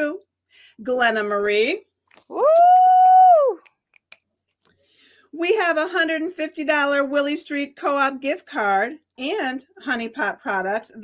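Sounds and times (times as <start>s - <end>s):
woman cheering woo: 2.3s - 3.7s.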